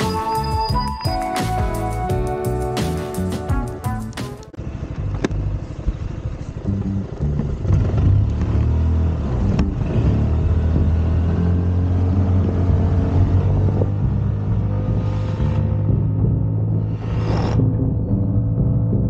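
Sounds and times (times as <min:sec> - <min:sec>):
scooter engine running: 0:04.6 - 0:11.1.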